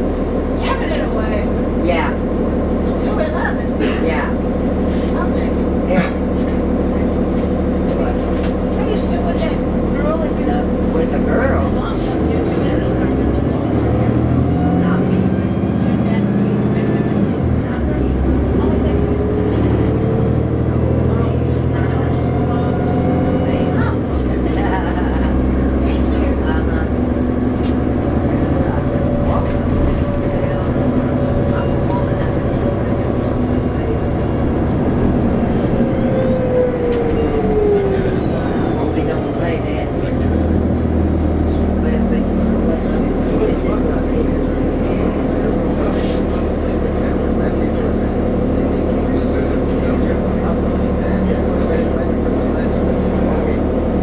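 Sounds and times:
bus diesel engine accelerating: 0.0s - 54.0s.

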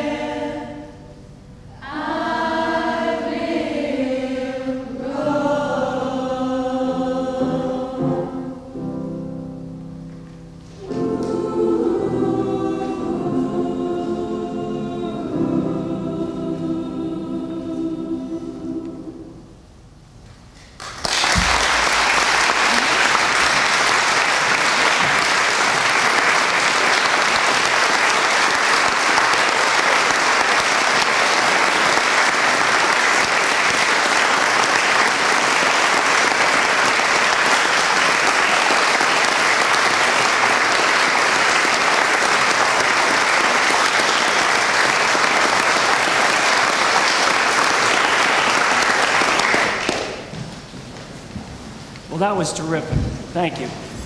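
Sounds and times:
audience applauding: 20.6s - 50.4s.

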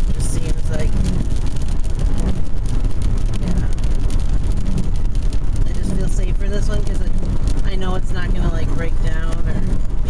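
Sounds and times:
car rumble from inside cabin: 0.0s - 10.0s
wind buffeting microphone: 0.0s - 10.0s.

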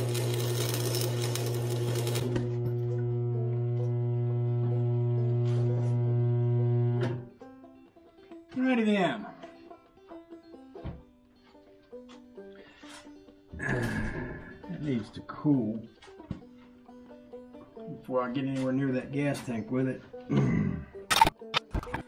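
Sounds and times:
welder humming: 0.0s - 7.3s
music with singing: 12.1s - 14.8s.

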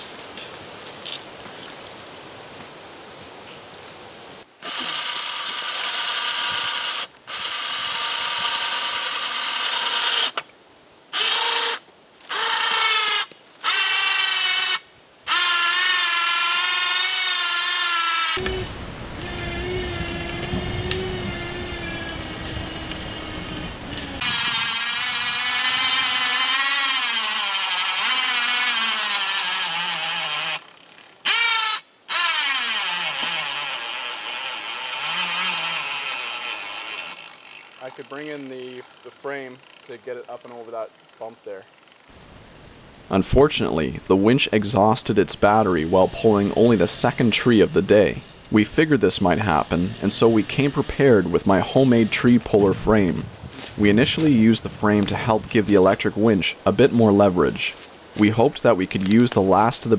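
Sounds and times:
electric winch motor whining: 4.6s - 10.4s, 11.2s - 42.1s, 45.5s - 52.6s
low rumbling noise: 18.4s - 26.3s.

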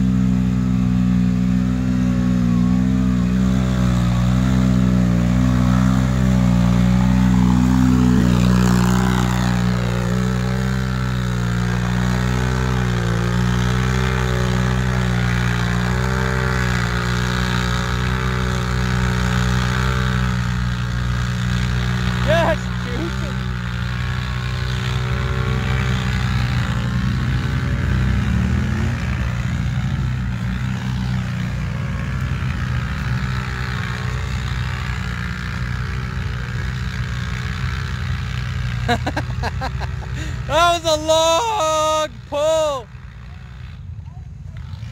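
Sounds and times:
atv engine at high revs: 0.0s - 44.9s.

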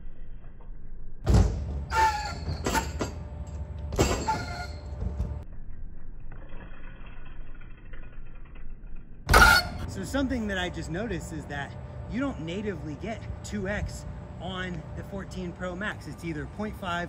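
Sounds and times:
bike thumps and rattles: 1.2s - 5.4s, 9.2s - 9.9s.

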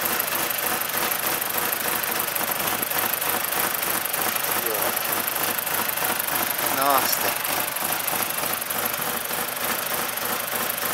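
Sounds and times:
car engine running roughly: 0.0s - 10.9s.

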